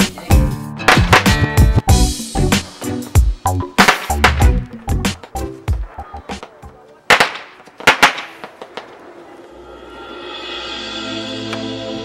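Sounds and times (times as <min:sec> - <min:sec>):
fireworks bangs: 0:03.8 - 0:09.6.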